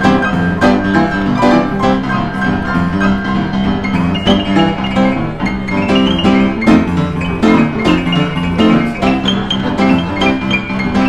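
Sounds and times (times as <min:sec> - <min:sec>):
upright piano played four hands: 0:00.0 - 0:11.0.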